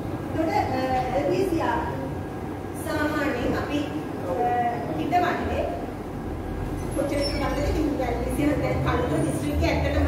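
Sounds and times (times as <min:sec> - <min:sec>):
woman lecturing: 0:00.3 - 0:05.9, 0:06.8 - 0:10.0.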